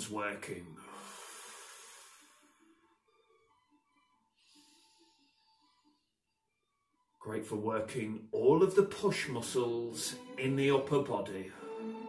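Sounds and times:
faint background music: 0.0 - 12.0
soft breathy exhale: 0.8 - 2.7.

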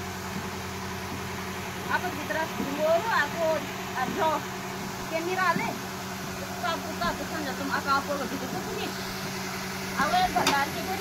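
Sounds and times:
electric fan motor hum: 0.0 - 11.0.

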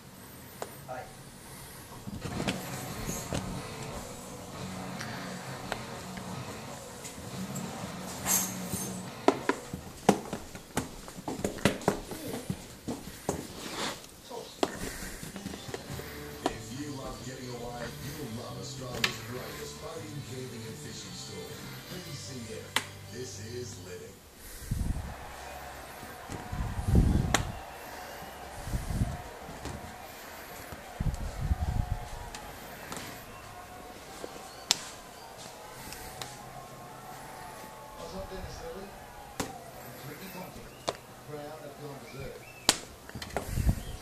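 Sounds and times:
commentators talking on television: 14.2 - 42.6.

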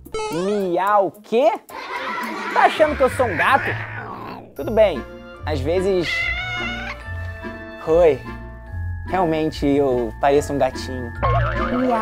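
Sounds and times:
background music: 0.0 - 12.0
cat meowing: 1.7 - 4.6, 5.9 - 7.1.

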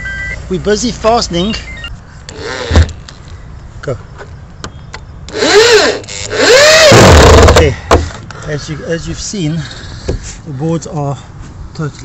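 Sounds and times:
drill driving screws into timber: 5.3 - 7.7.

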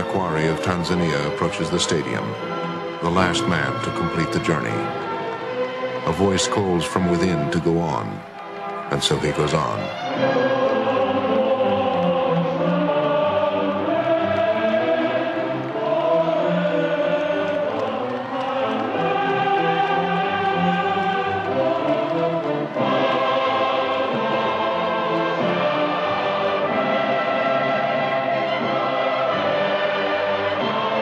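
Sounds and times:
choir singing slow song: 10.1 - 31.0.

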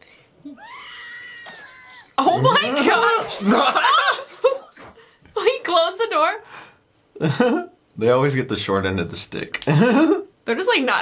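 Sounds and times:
woman screaming: 0.5 - 4.3.

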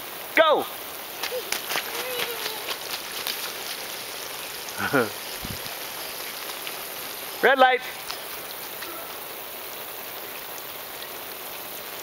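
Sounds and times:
water spraying from sprinkler: 0.0 - 12.0.

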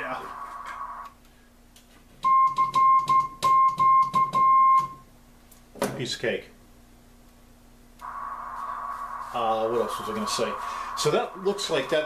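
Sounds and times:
morse code sidetone beeps: 2.2 - 5.0.

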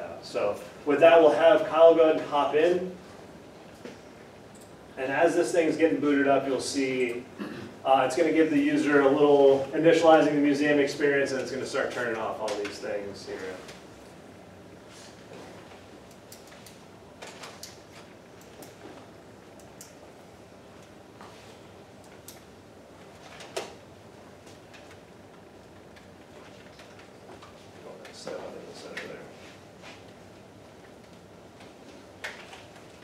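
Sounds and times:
room hum: 0.0 - 33.0.

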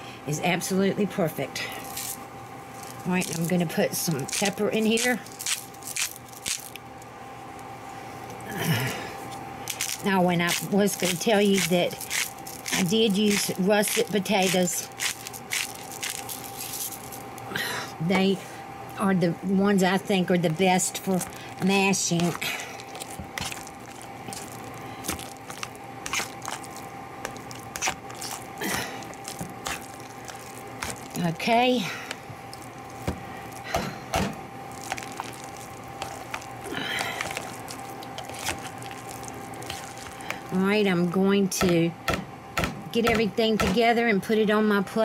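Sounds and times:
faint steady hum: 0.0 - 45.0
potato masher squishing: 2.8 - 6.8, 9.7 - 17.2, 20.5 - 40.6.

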